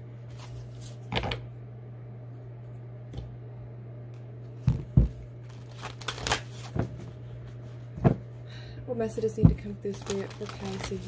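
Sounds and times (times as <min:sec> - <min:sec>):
steady low hum: 0:00.0 - 0:11.0
cards shuffling: 0:05.5 - 0:07.0.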